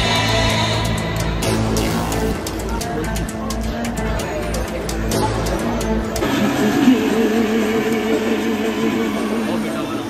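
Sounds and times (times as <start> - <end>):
cotton candy machine humming: 3.8 - 10.0.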